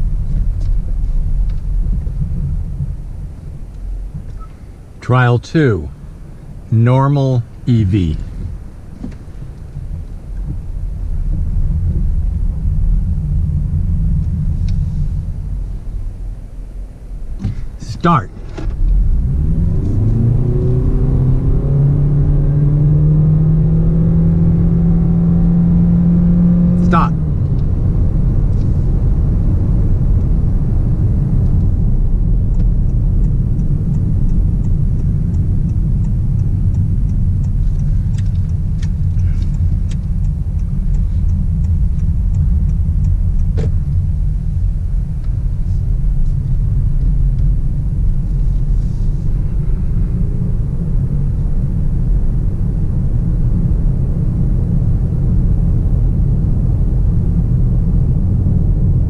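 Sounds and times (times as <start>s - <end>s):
road and wind noise: 0.0s - 59.0s.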